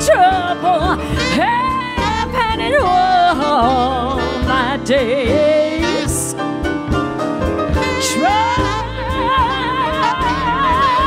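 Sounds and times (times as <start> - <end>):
woman singing wordless line: 0.0 - 6.3, 8.0 - 11.0
drums: 0.0 - 11.0
piano: 0.0 - 11.0
upright bass: 0.0 - 11.0.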